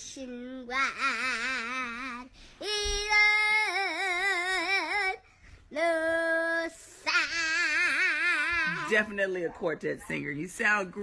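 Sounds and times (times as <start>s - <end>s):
girl singing unaccompanied: 0.0s - 9.0s.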